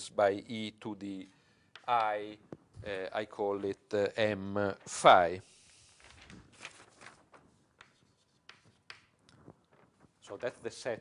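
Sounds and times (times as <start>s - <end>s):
faint writing on a board: 7.8s - 9.1s.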